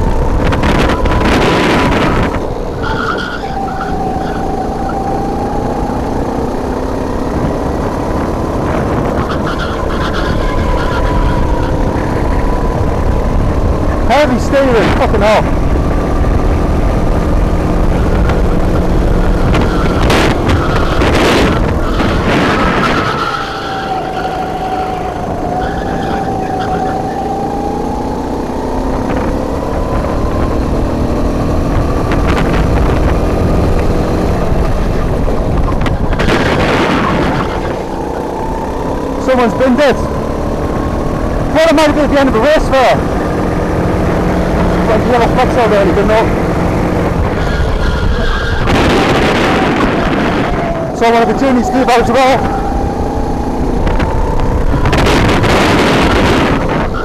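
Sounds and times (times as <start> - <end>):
go-kart engine running hard: 0.0 - 57.0.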